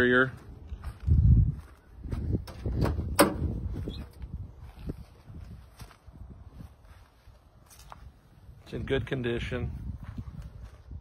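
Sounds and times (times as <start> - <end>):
car door clicks and knocks: 2.5 - 3.5.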